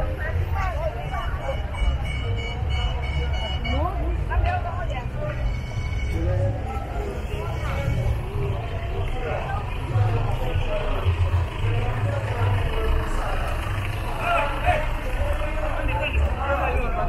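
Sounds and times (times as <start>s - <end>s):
car engines rumbling: 0.0s - 17.0s
crowd chatter: 0.0s - 17.0s.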